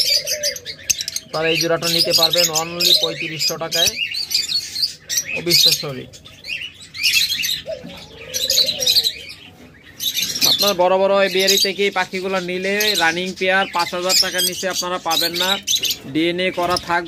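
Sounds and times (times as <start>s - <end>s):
birds chirping: 0.0s - 17.0s.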